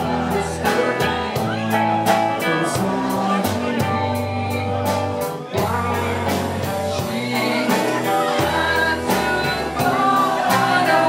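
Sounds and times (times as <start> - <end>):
bass guitar: 0.0 - 11.0
drum kit beat: 0.0 - 11.0
electric guitars: 0.0 - 11.0.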